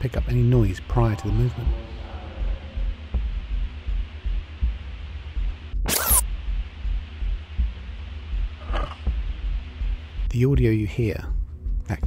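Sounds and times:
low pulsing music: 0:00.0 - 0:12.0.

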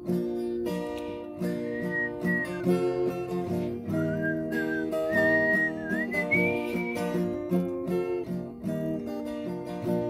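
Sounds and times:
acoustic guitar strumming: 0:00.0 - 0:10.0
woman whistling a melody: 0:01.5 - 0:02.9, 0:03.8 - 0:07.3.

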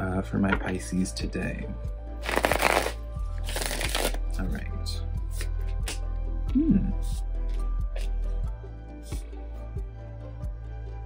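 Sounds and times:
cards being shuffled: 0:02.2 - 0:04.2.

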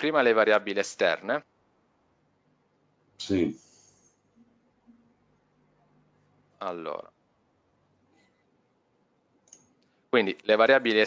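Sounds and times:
faint clicks: 0:09.4 - 0:10.0.

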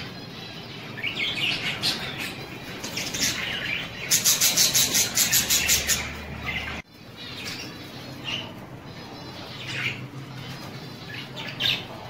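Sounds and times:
budgerigars chirping and chattering: 0:00.0 - 0:12.0.

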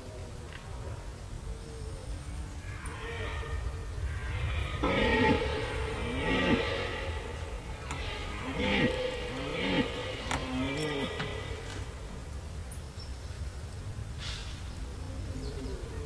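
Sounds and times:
deer stag roaring: 0:02.6 - 0:12.2.

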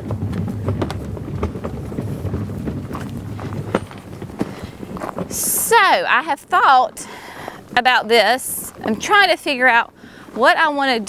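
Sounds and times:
footsteps: 0:00.0 - 0:11.0
wagon wheels rolling over mulch: 0:00.0 - 0:11.0.

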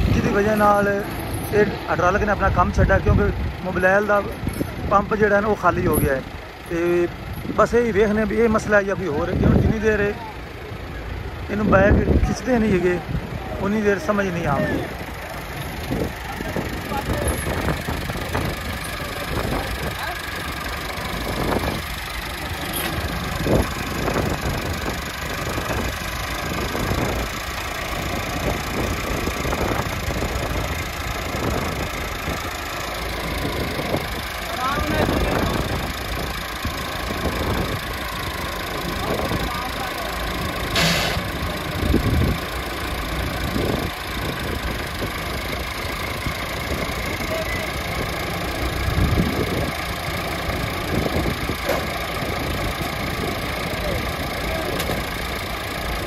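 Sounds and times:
tractor diesel engines idling: 0:00.0 - 0:56.0.

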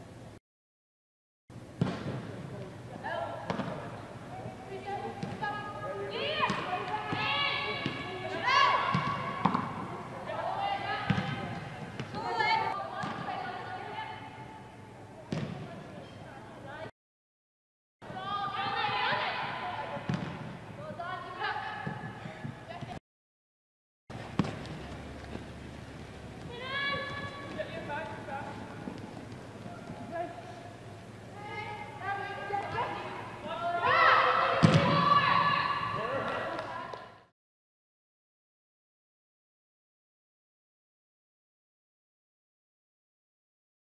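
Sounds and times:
ball kick: 0:01.8 - 0:02.4, 0:08.9 - 0:09.8, 0:15.3 - 0:15.7, 0:20.0 - 0:20.6, 0:24.1 - 0:25.5, 0:34.6 - 0:35.2
players shouting calls: 0:03.0 - 0:14.5, 0:18.1 - 0:22.3, 0:26.3 - 0:30.6, 0:31.3 - 0:37.0.

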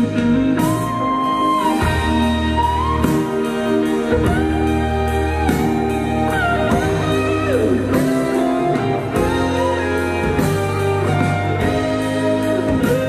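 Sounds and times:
guitar with bending notes: 0:00.0 - 0:13.0
live band music: 0:00.0 - 0:13.0
steady bass line: 0:00.0 - 0:13.0.

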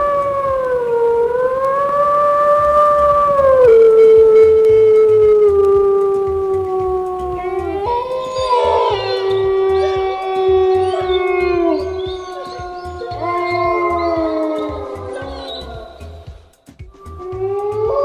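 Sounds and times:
wolves howling: 0:00.0 - 0:16.4, 0:17.0 - 0:18.0.

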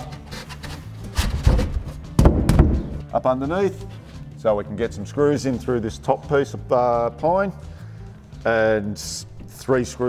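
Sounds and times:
wooden board knocking on frame: 0:01.4 - 0:03.0.

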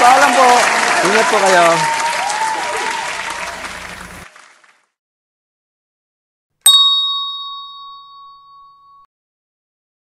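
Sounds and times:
hand bell ringing: 0:06.6 - 0:09.1.

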